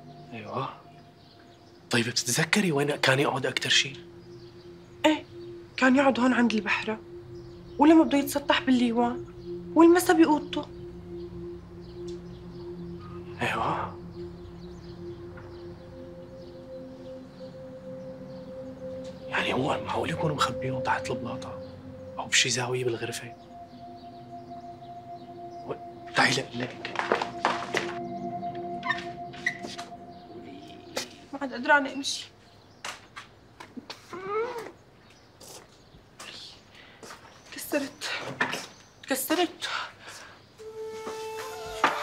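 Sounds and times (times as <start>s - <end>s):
sustained drone notes: 0.0s - 32.8s, 40.6s - 42.0s.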